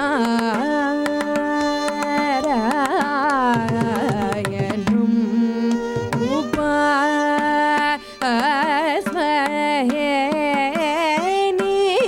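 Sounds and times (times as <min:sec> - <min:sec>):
person singing: 0:00.0 - 0:12.0
violin accompaniment: 0:00.0 - 0:12.0.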